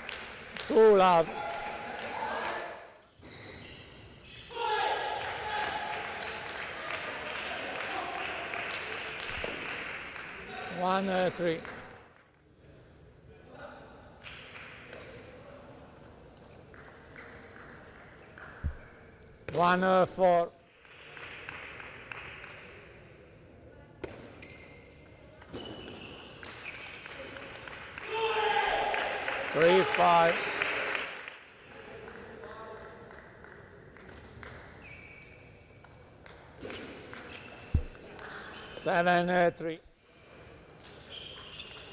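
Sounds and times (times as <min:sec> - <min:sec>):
low thud: 0:37.7 - 0:38.0
table tennis ball taps: 0:37.7 - 0:38.0.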